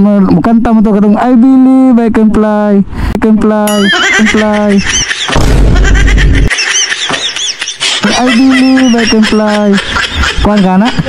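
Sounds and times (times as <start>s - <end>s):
person laughing: 3.7s - 11.0s.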